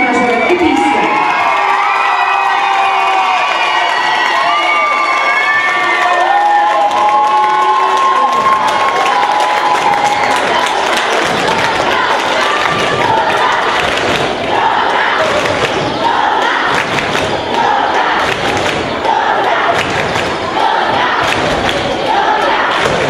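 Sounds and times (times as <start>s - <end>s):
crowd of young voices cheering: 0.1s - 23.0s.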